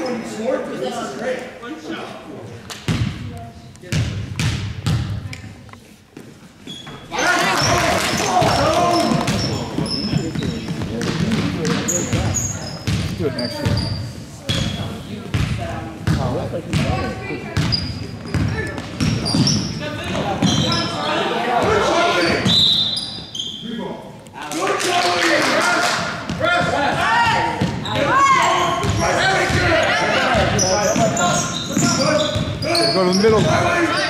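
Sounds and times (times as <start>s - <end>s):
echoing voices in hall: 0.0s - 34.0s
sneakers squeaking: 2.8s - 23.9s, 26.2s - 34.0s
basketball bouncing on hardwood: 8.4s - 13.8s, 15.3s - 20.6s.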